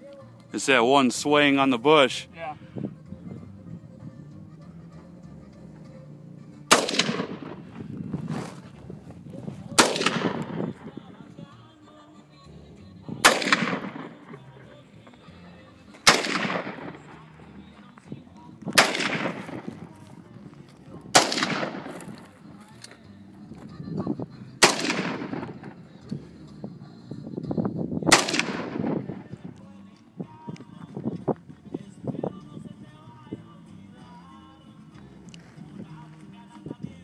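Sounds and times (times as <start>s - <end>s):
rifle shots echoing: 6.7s - 7.8s, 9.7s - 11.0s, 13.2s - 14.6s, 16.0s - 17.5s, 18.7s - 20.1s, 21.1s - 22.3s, 24.6s - 25.8s, 28.1s - 29.4s.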